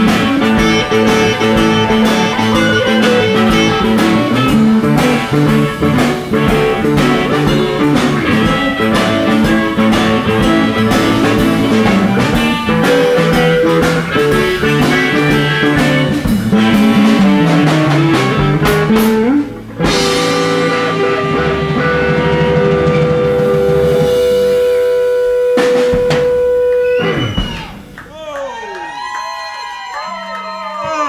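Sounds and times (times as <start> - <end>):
held guitar chord: 0.0 - 26.9
live blues band playing: 0.0 - 28.1.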